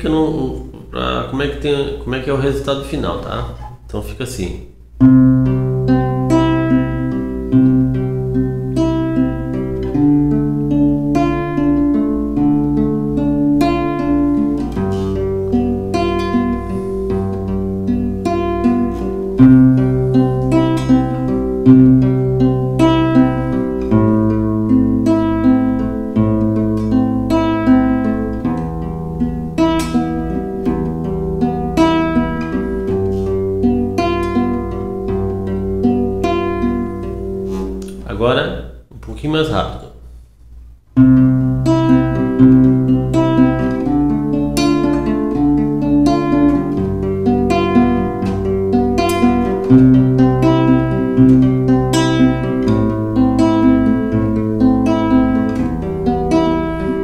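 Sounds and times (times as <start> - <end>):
classical guitar fingerpicked: 2.3 - 3.9, 5.0 - 38.0, 41.0 - 57.0.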